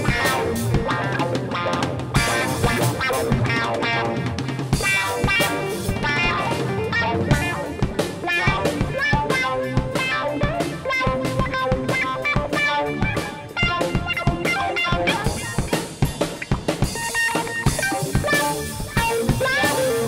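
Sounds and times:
drum kit beat: 0.0s - 20.0s
guitar: 0.0s - 20.0s
rock band playing: 0.0s - 20.0s.

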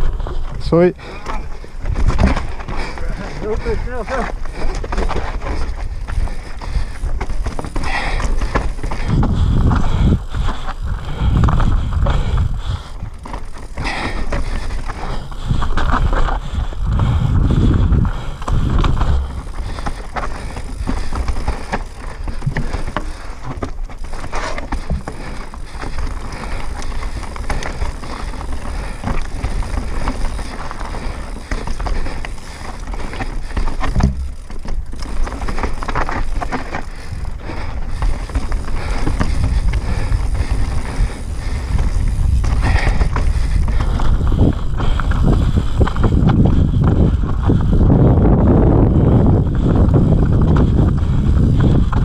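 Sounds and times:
bike rattling: 0.0s - 52.0s
bike tyres crunching over stones: 0.0s - 52.0s
wind buffeting microphone: 0.0s - 52.0s.

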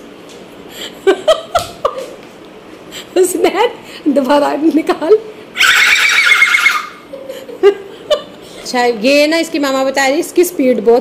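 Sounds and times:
boy imitating horse neigh: 5.6s - 7.1s.

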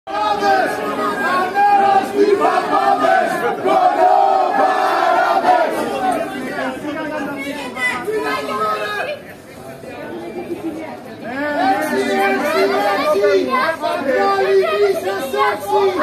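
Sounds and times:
crowd shouting in unison: 0.1s - 6.6s, 11.6s - 16.0s.

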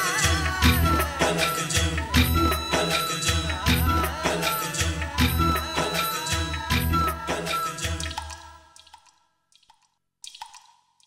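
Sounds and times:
water drip plinks: 2.2s - 11.0s.

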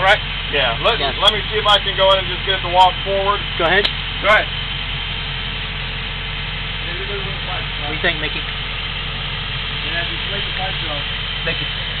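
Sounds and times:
air compressor engine droning: 0.0s - 12.0s.

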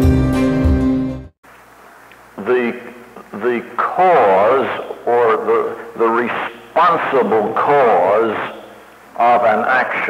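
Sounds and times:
man lecturing: 2.4s - 10.0s.

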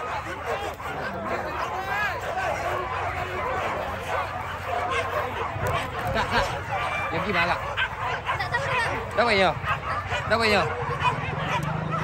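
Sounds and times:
crowd chatter: 0.0s - 12.0s
dogs yelping and barking: 0.0s - 12.0s.

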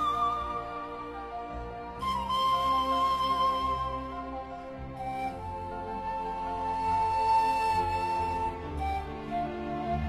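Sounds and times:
soft orchestral accompaniment: 0.0s - 10.0s.

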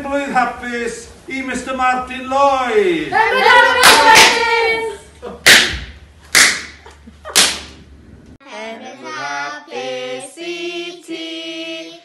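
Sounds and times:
handclaps ringing in a large room: 5.4s - 6.8s.

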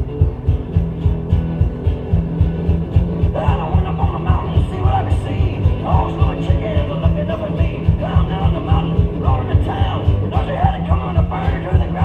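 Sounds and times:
guitar notes: 0.0s - 12.0s
low thumping beat: 0.0s - 12.0s.

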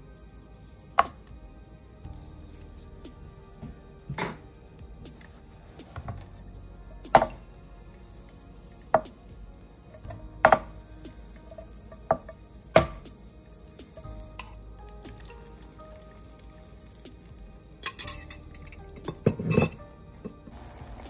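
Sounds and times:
frying pan and utensils knocking: 10.4s - 10.7s
butter foaming in a pan: 20.5s - 21.0s.

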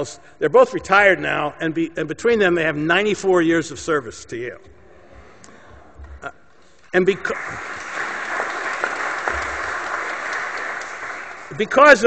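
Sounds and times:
audience applauding: 7.1s - 12.0s.

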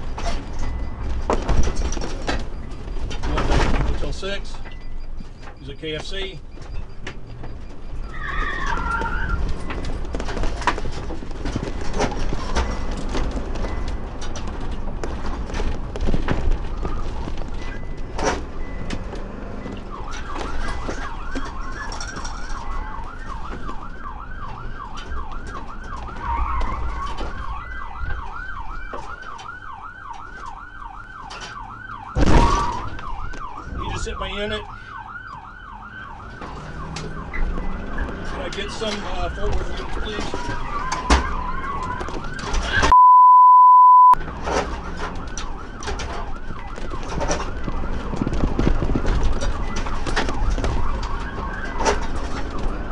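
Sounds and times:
car road and engine noise: 0.0s - 43.0s, 44.1s - 52.9s
police siren yelping: 4.1s - 11.0s, 16.4s - 43.0s, 44.1s - 52.9s
loud thump: 32.2s - 33.0s.

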